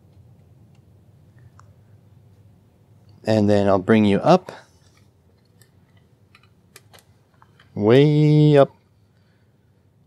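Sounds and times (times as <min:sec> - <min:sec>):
faint handling clicks and knocks: 0:04.8 - 0:07.8.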